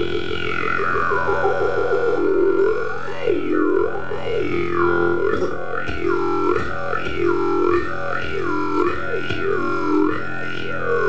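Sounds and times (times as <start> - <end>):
jew's harp twanging: 4.2 - 10.8.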